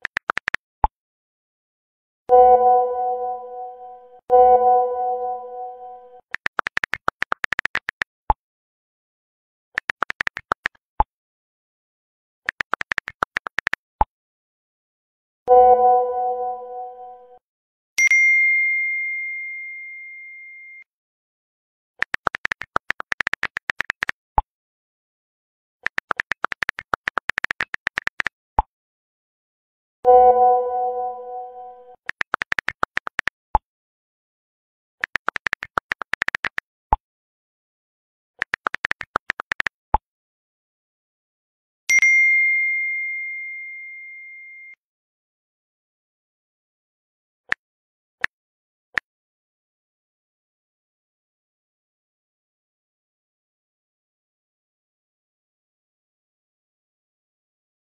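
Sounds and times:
smartphone keyboard clicks: 0.0s - 0.6s, 6.3s - 8.1s, 9.8s - 10.8s, 12.5s - 13.8s, 22.0s - 24.1s, 25.8s - 28.3s, 32.0s - 33.3s, 35.0s - 36.6s, 38.4s - 39.7s
phone notification ding: 2.3s - 6.2s, 15.5s - 17.0s, 30.1s - 31.9s.

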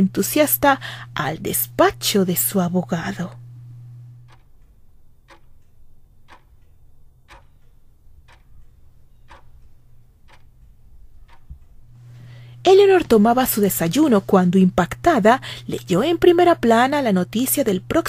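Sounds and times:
sharp ticking: 0.4s - 12.0s.

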